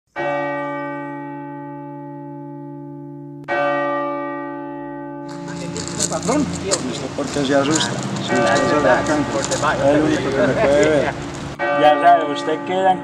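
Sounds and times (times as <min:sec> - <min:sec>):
deep bell ringing: 0:00.2 - 0:13.0.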